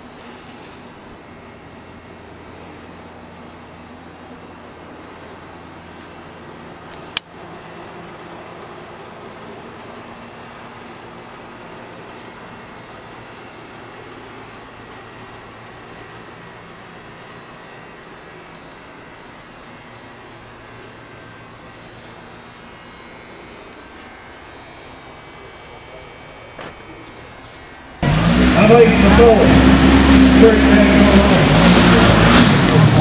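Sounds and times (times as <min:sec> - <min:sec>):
background hum and hiss: 0:00.0 - 0:33.0.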